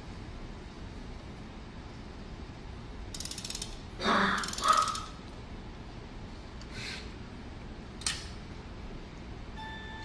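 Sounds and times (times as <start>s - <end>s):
music box winding ratchet clicks: 3.2s - 3.8s, 4.4s - 5.1s.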